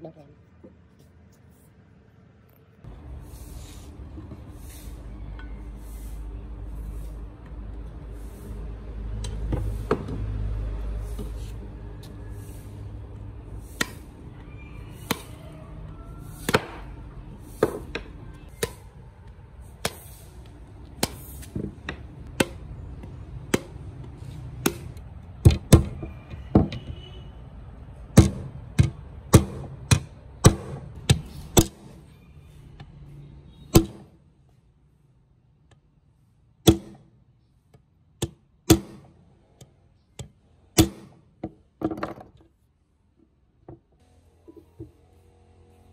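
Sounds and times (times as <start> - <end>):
hammer striking steel pin: 36.6 - 37.0.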